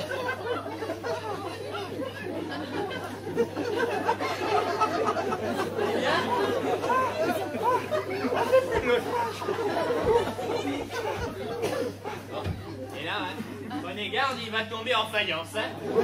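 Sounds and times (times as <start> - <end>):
voices chattering: 0.0 - 16.0.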